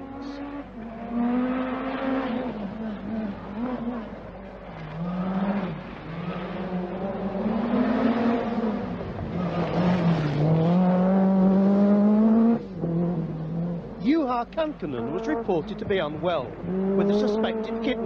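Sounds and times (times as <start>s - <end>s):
rally car engine at full throttle: 0.0s - 18.0s.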